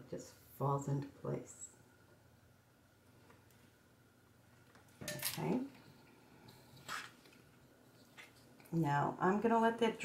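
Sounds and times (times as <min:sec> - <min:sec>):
soft hiss-like noise: 0:00.0 - 0:09.4.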